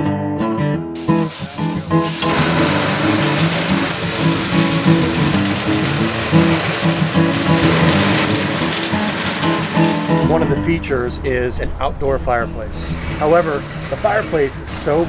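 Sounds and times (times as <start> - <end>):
background music: 0.0 - 15.0
concrete mixer churning: 1.0 - 11.2, 13.0 - 15.0.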